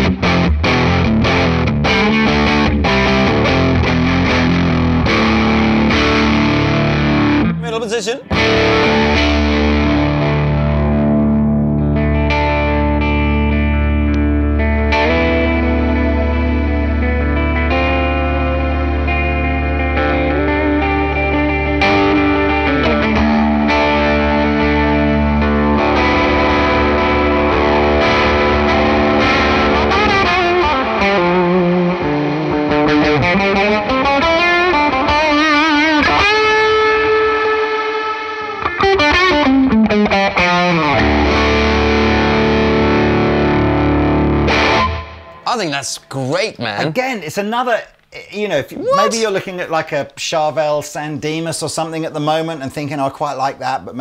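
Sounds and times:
distorted electric guitar: 0.0s - 45.5s.

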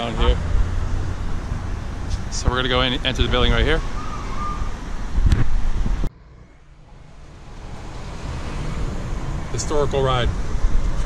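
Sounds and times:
wind buffeting microphone: 0.0s - 6.1s, 7.4s - 11.0s.

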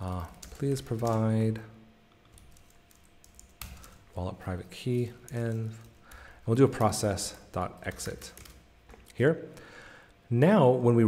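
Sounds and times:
keyboard typing: 0.0s - 1.4s, 2.2s - 8.6s.

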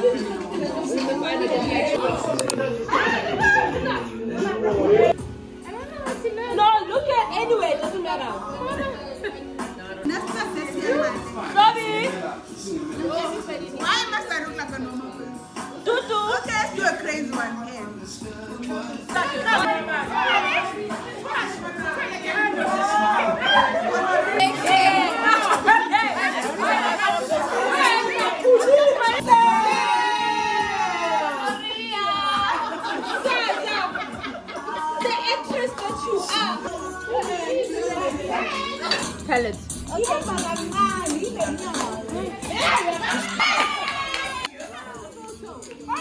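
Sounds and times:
music playing: 0.0s - 46.0s
voices chattering: 0.0s - 46.0s.

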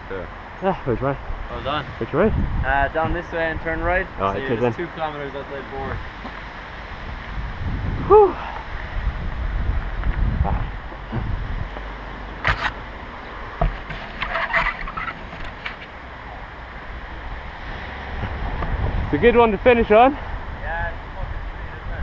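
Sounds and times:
person calling: 8.0s - 8.6s
bike rolling over grass: 13.5s - 16.0s.

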